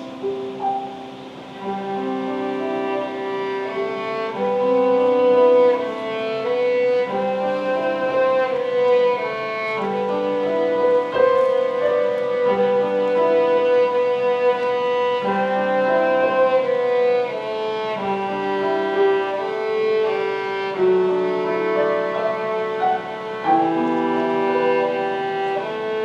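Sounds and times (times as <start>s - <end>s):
digital piano chords: 0.0s - 26.0s
violin playing slow melody: 0.0s - 26.0s.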